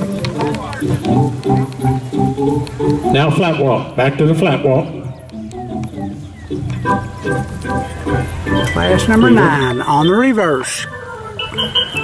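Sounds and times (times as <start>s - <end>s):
organ music over loudspeakers: 0.0s - 12.0s.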